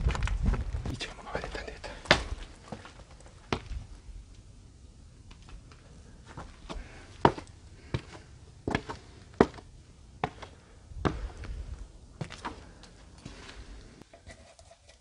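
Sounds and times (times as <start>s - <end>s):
footsteps and knocks: 0.0s - 1.0s, 2.0s - 3.9s, 5.3s - 11.6s, 12.2s - 13.6s.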